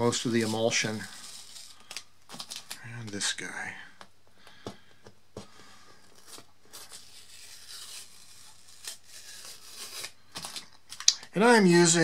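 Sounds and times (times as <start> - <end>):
tape peeling off paper: 0.1 - 2.8, 6.2 - 11.0.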